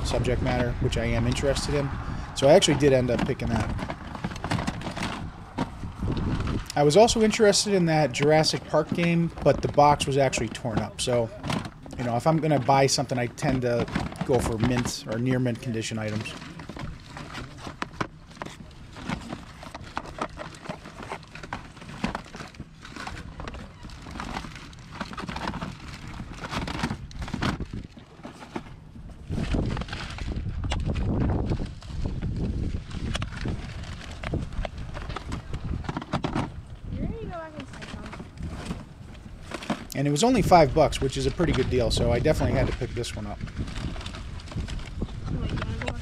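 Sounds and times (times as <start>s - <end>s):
wind rumble on microphone: 0.0s - 11.9s, 22.8s - 46.0s
plastic cases clacking: 0.0s - 28.8s.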